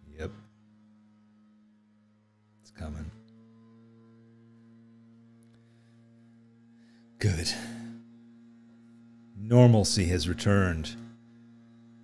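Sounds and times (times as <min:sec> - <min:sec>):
distant leaf blower drone: 0:00.0 - 0:12.0.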